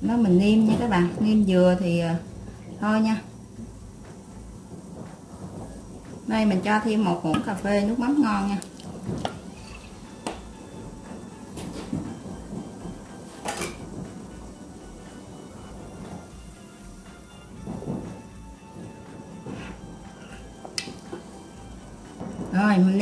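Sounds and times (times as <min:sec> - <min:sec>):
soft background music: 0:00.0 - 0:23.0
wooden spoon knocking on metal pot: 0:06.6 - 0:10.5, 0:19.4 - 0:21.4.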